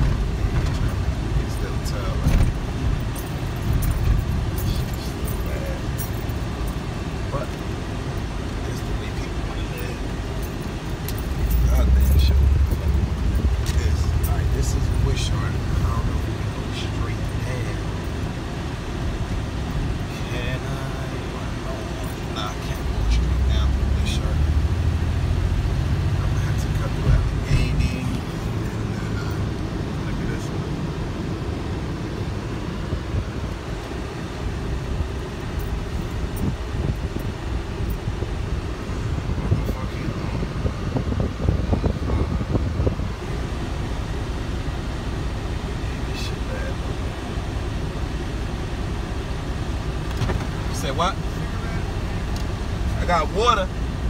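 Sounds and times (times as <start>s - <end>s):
engine and road rumble: 0.0s - 54.0s.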